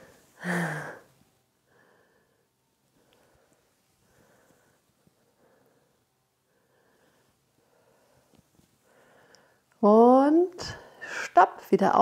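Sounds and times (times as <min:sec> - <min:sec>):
soft puffs of hiss: 0:00.0 - 0:09.9.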